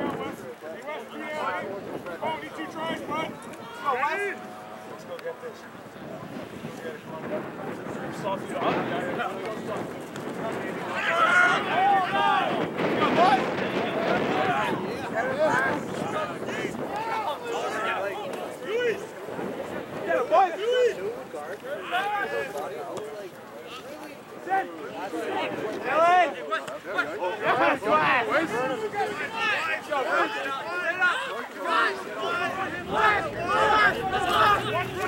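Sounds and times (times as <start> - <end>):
wind on microphone: 5.6 - 21.5, 32.2 - 35.0
voices shouting calls: 10.6 - 22.6, 26.3 - 35.0
men shouting: 10.9 - 13.5, 27.4 - 35.0.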